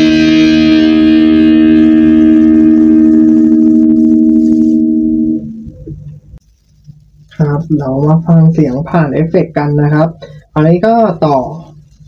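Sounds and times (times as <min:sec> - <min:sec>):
electric guitar chord ringing: 0:00.0 - 0:06.2.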